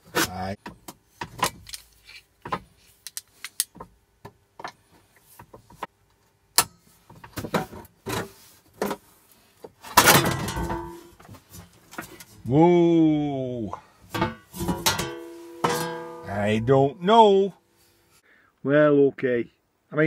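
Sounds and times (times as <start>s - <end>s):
metal scraping rattle: 14.2s - 16.6s.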